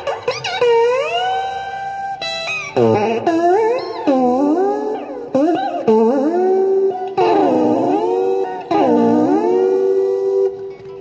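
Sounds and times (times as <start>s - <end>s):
fuzz electric guitar notes: 0.0s - 11.0s.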